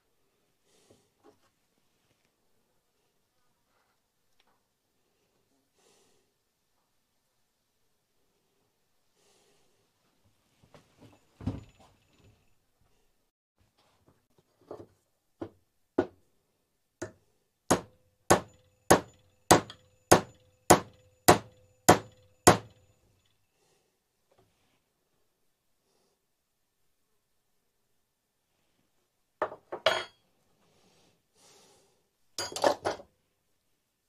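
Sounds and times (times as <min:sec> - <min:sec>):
hammer striking metal part: 0:17.7 - 0:22.8.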